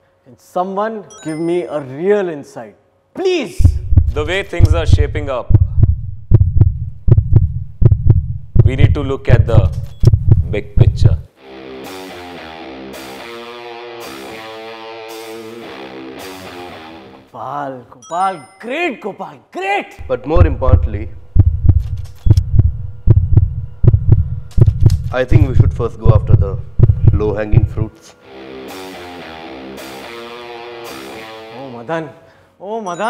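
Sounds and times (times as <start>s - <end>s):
deep drum thumps: 3.6s - 11.2s, 20.0s - 21.9s, 22.5s - 27.8s
faint steady hum: 20.0s - 28.2s
low steady drone: 20.0s - 28.7s.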